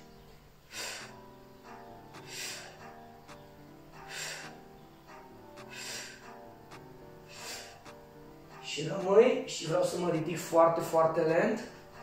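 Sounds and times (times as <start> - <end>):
soft background music: 0.0 - 12.0
man breathing: 0.6 - 1.3, 2.2 - 3.0, 3.9 - 4.7, 5.6 - 6.4, 7.2 - 7.9.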